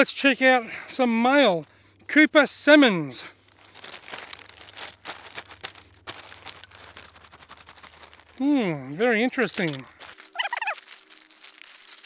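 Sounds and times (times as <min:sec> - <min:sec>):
plastic satchel tearing and crinkling: 0:03.5 - 0:08.4, 0:09.3 - 0:12.0.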